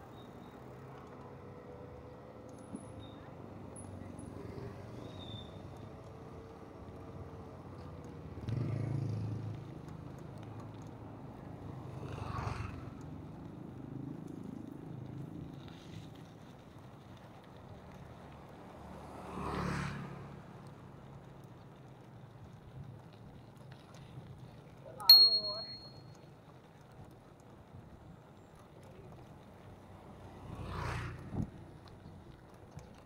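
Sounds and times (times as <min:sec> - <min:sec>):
bicycle rolling rumble: 0:00.4 - 0:33.0.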